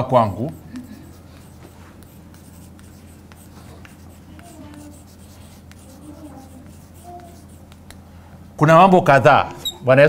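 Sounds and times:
chalk tapping and scratching: 0:00.0 - 0:08.1
steady low hum: 0:00.0 - 0:10.0.

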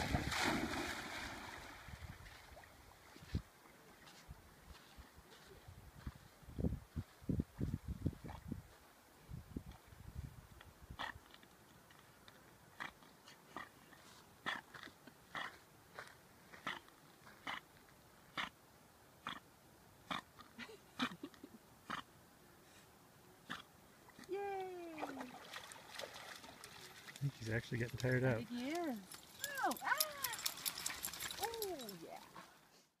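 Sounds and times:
wet dog shaking water: 0:25.0 - 0:32.3
person calling out: 0:29.4 - 0:30.4.

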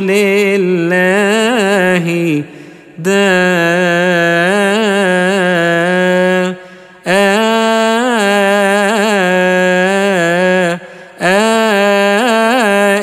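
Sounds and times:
man chanting liturgical melody: 0:00.0 - 0:13.0
man breathing: 0:02.4 - 0:03.0, 0:06.6 - 0:07.1, 0:10.8 - 0:11.2.

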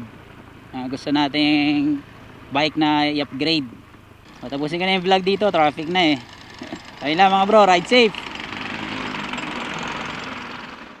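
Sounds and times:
road noise: 0:00.0 - 0:11.0
wind: 0:00.0 - 0:11.0
scooter engine drone: 0:04.2 - 0:11.0.

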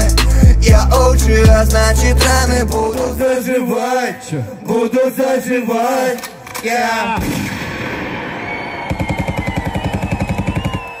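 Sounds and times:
person rapping over a beat: 0:00.0 - 0:05.5
machine-gun sound effect: 0:08.7 - 0:10.9.

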